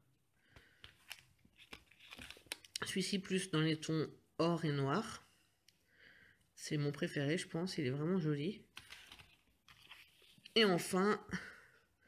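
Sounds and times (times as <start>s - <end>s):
plastic blister pack crinkling: 1.0s - 2.8s.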